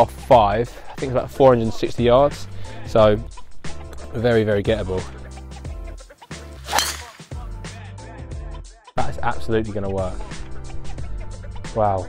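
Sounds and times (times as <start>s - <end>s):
background music: 0.0s - 12.0s
golf club striking ball: 6.6s - 7.4s.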